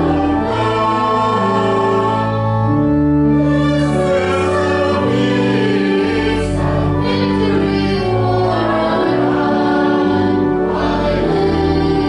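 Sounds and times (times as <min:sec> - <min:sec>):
organ chords: 0:00.0 - 0:12.0
voices singing: 0:00.0 - 0:12.0.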